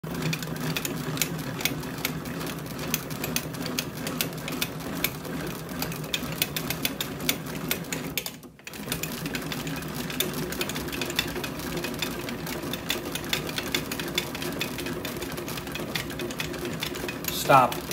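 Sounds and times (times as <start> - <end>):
bat-rolling machine whirring: 0.1 - 17.9.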